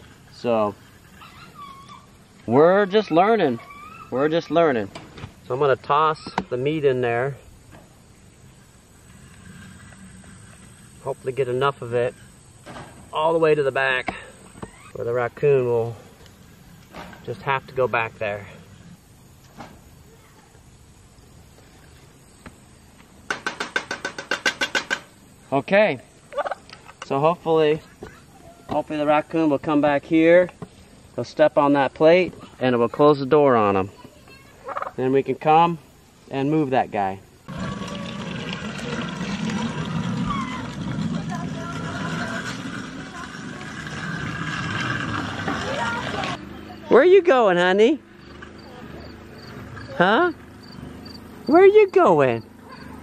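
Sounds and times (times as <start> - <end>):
distant children's voices: 19.9 - 20.7, 27.6 - 29.0, 33.7 - 35.0, 37.6 - 47.2, 48.3 - 50.4, 51.5 - 53.0
turkey gobbling: 26.3 - 26.7, 34.6 - 35.0.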